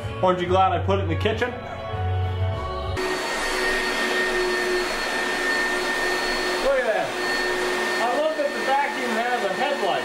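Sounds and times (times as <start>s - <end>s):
vacuum cleaner running on carpet: 3.0s - 10.0s.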